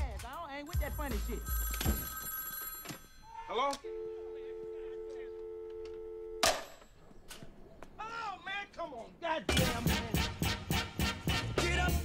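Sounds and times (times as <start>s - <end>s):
telephone dial tone: 1.4s - 6.4s.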